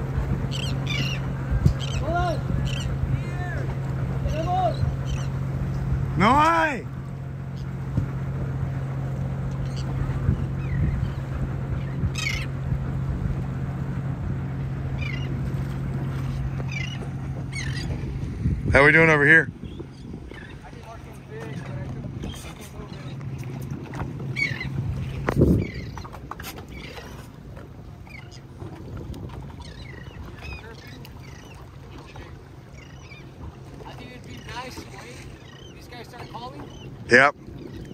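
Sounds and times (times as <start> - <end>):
boat engine idling: 0.0 - 37.9
sea washing against hull: 0.0 - 37.9
seabirds calling: 0.0 - 37.9.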